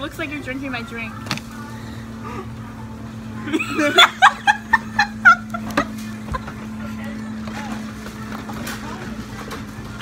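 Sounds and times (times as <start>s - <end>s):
steady low hum: 0.0s - 10.0s
young women laughing: 3.4s - 6.5s.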